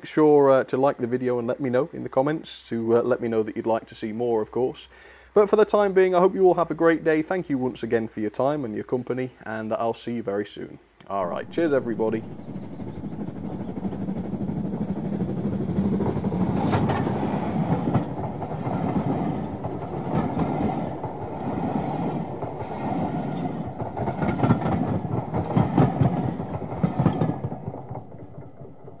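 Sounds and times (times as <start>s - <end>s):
train carriages rumbling: 11.1s - 29.0s
wheels clicking over rails: 11.2s - 29.0s.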